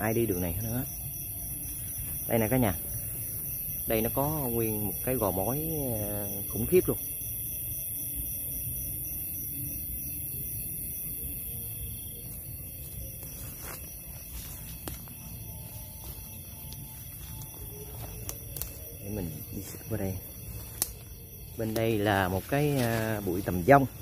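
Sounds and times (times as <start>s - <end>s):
faint music: 0.0s - 24.0s
insect chorus: 0.0s - 24.0s
footsteps in undergrowth: 12.7s - 24.0s.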